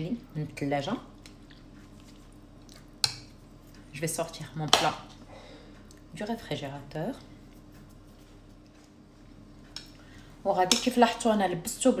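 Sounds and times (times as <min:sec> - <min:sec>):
woman speaking: 0:00.0 - 0:01.1, 0:03.9 - 0:05.1, 0:06.1 - 0:07.3, 0:10.4 - 0:12.0
room hum: 0:00.0 - 0:12.0.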